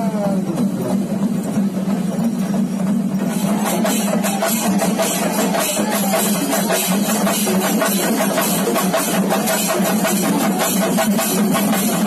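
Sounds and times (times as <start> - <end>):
outdoor crowd noise: 0.0 - 12.0.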